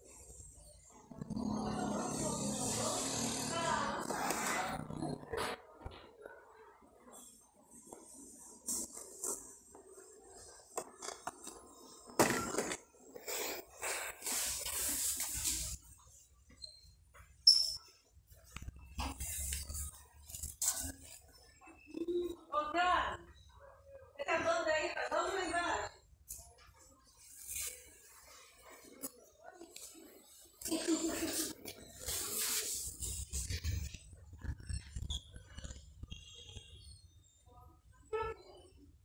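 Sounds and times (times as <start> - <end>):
indistinct voices: 1.0 - 6.1.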